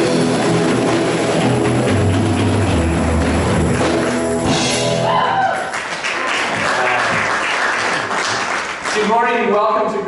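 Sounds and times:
band holding loud chord: 0.0 - 5.2.

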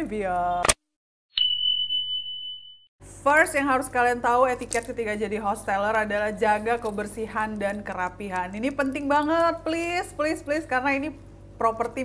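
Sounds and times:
high bell-like ding: 1.4 - 2.9.

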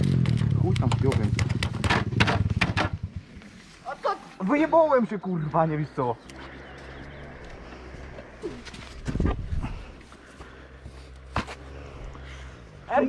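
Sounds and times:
dirt bike engine idling: 0.0 - 8.5.

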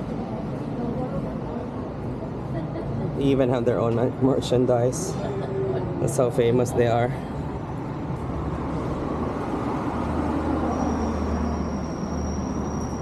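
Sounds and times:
murmur of voices: 0.0 - 8.8
passing vehicles hum: 0.0 - 13.0
thin high whine: 10.7 - 13.0.

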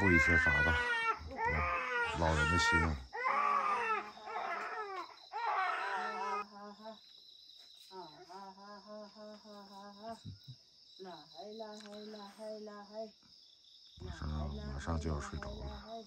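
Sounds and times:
infant crying: 0.0 - 6.5
crickets chirring: 0.0 - 16.0.

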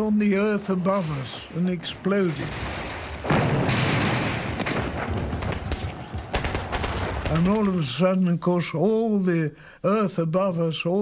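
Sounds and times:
shell explosion rumble: 0.7 - 7.9
sharp cracks of gunfire: 0.9 - 7.9.

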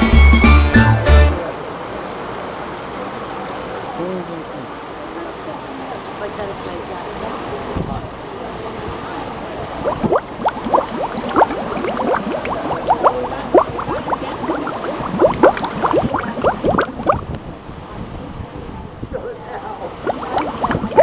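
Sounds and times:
water gurgling and bubbling: 9.8 - 17.3, 20.0 - 21.0
quick rising blips: 9.9 - 17.2, 20.1 - 21.0.

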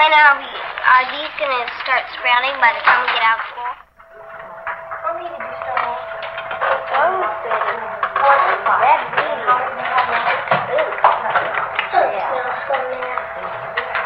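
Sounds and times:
children chattering: 0.0 - 14.0
steady hum: 0.0 - 14.0.

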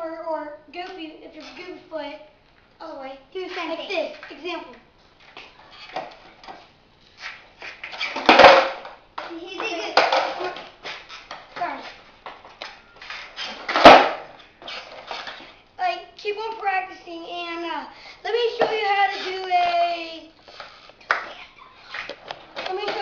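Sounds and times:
skateboard landing slaps: 7.2 - 11.4, 13.5 - 14.3
skateboard clattering on concrete: 7.8 - 11.5, 13.5 - 15.5
skateboard deck and wheel knocks: 8.1 - 9.0, 13.7 - 14.2.

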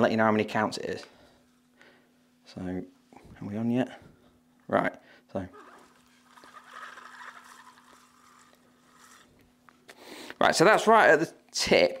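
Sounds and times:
steady low hum: 0.0 - 11.8
fishing reel whirring: 5.5 - 9.4.

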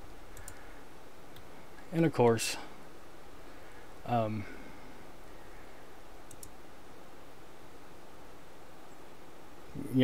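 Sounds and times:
faint hum and hiss: 0.0 - 10.0.

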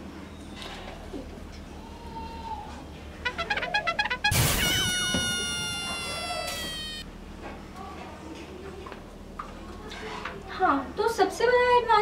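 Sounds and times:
comic descending note: 3.2 - 7.0.

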